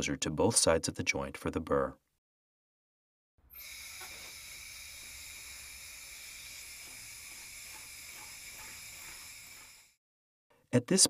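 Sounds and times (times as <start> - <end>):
surgical burr whining: 3.4 - 10.0.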